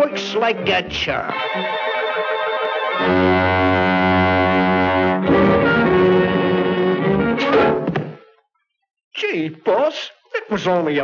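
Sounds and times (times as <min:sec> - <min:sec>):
orchestral brass chords: 0:00.8 - 0:07.9.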